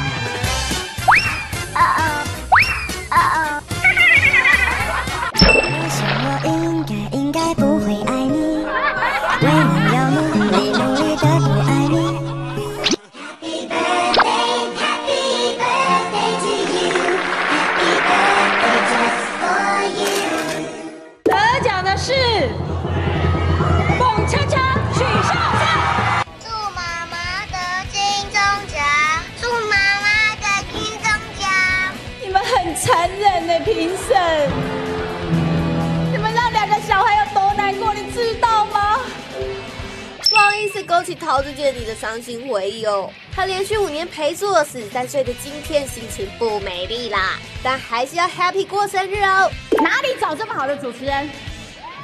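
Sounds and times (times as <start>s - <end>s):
bright ringing ding: 5.4s - 6.0s, 40.2s - 41.0s
music with low drone and melody: 5.5s - 12.8s
child's sing-song voice: 6.0s - 12.3s, 13.2s - 20.9s, 26.5s - 32.0s.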